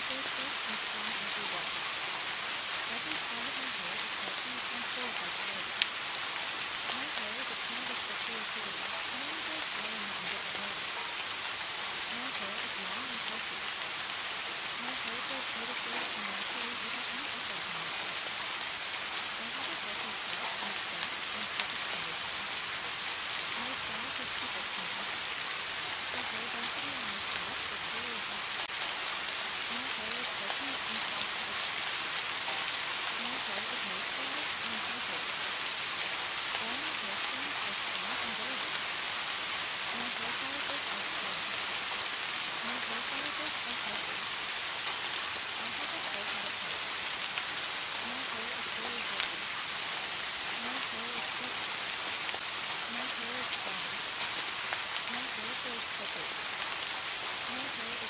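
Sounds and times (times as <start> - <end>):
steady rain: 0.0 - 58.0.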